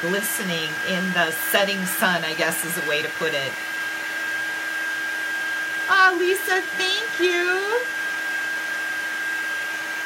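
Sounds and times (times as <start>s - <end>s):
heat tool fan humming: 0.0s - 10.0s.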